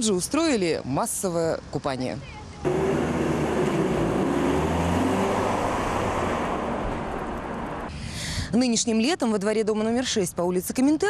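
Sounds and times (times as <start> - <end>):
car driving past: 2.7 - 7.9.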